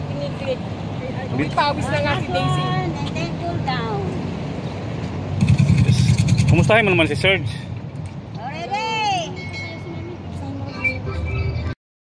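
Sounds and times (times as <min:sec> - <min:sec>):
city traffic rumble: 0:00.0 - 0:11.8.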